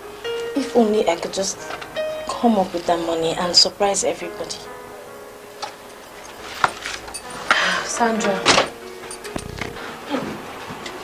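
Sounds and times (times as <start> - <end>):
soft film music: 0.0 - 11.0.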